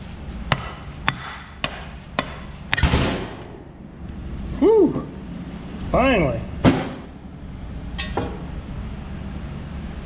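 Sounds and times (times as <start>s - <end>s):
rubber mallet striking metal: 0.5s - 2.9s.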